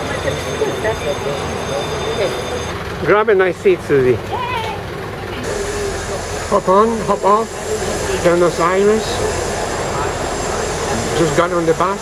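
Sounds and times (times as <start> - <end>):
bus engine humming: 0.0 - 12.0
street traffic: 0.0 - 12.0.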